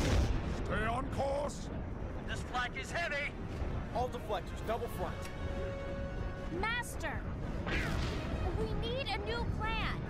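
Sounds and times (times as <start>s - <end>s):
deep rumbling explosion: 0.0s - 0.9s.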